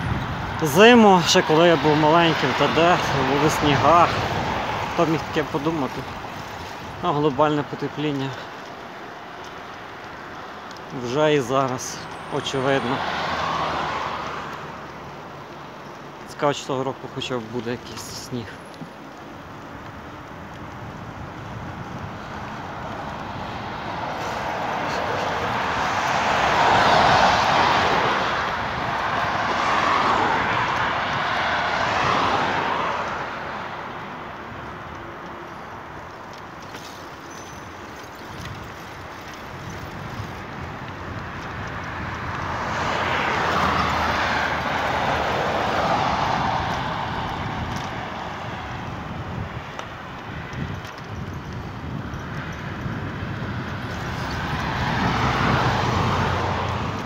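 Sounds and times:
cars passing with tyre hiss: 0:00.0 - 0:57.0.

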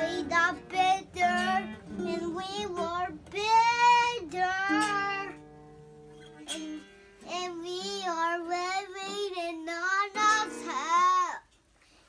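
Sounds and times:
boy singing: 0:00.0 - 0:05.4, 0:07.2 - 0:11.5
small guitar strums: 0:00.0 - 0:11.7.

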